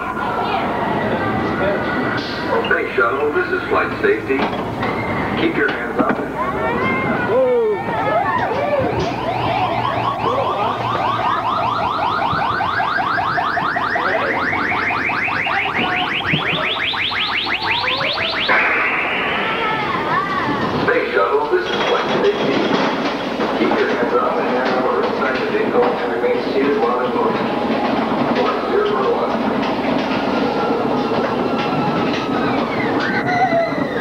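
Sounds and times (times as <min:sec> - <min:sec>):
coaster train rumbling on track: 0:00.0 - 0:34.0
rising pulsing electronic tone: 0:17.4 - 0:20.6.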